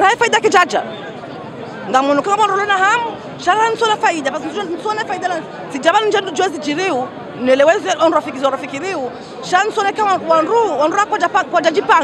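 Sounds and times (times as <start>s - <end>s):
woman talking: 0.0s - 0.9s, 1.9s - 12.0s
chatter of people: 0.0s - 12.0s.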